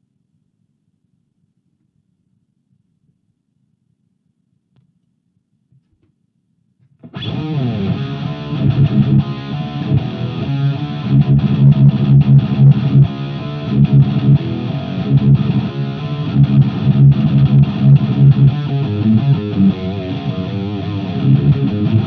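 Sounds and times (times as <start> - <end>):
distorted electric guitar chugging: 7.0 - 22.0.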